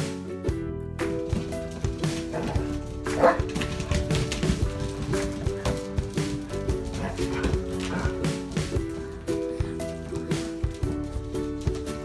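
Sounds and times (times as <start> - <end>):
background music with held notes: 0.0 - 12.0
dog yipping: 2.3 - 3.5.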